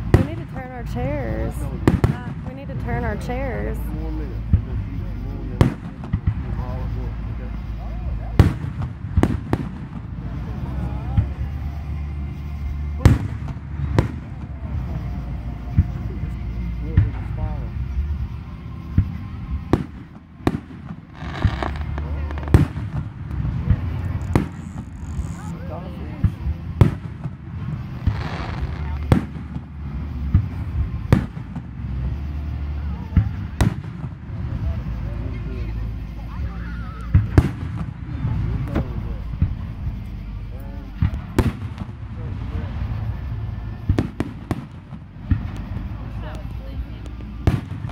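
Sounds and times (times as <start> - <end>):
fireworks booming: 0.0 - 11.9, 13.0 - 16.4, 17.0 - 35.6, 37.1 - 47.9
continuous low rumble: 0.0 - 47.9.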